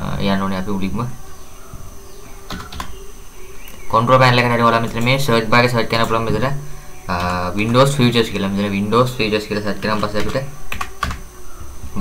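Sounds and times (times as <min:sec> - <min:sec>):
man talking: 0:00.0 - 0:01.2, 0:03.9 - 0:10.6
keyboard typing: 0:02.4 - 0:03.1, 0:05.8 - 0:08.4, 0:09.4 - 0:11.4.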